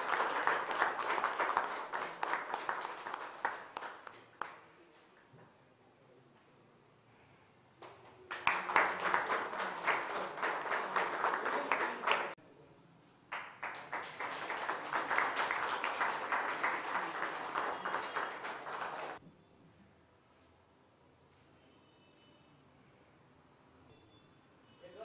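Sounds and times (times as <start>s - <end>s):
crowd clapping: 0.0s - 4.7s, 7.8s - 12.4s, 13.3s - 19.2s.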